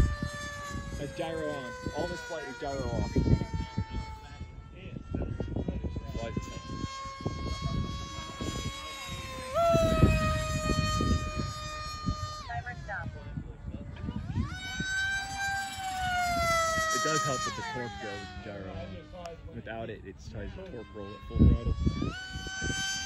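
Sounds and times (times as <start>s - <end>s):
electric motor whine: 0.0s - 23.0s
low rumbling noise: 0.0s - 23.0s.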